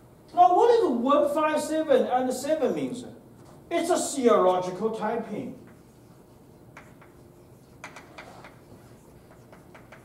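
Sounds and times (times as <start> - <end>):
chalk tapping on blackboard: 5.6 - 10.0.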